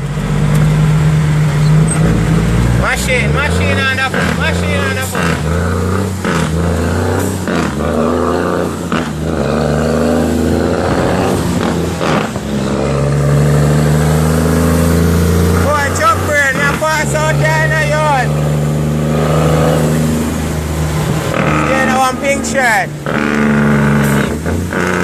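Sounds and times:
diesel truck engine running: 0.0 - 25.0.

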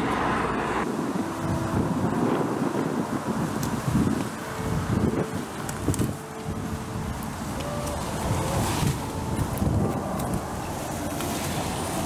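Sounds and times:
leaves and branches rustling: 0.0 - 12.0
wind buffeting microphone: 0.0 - 12.0.

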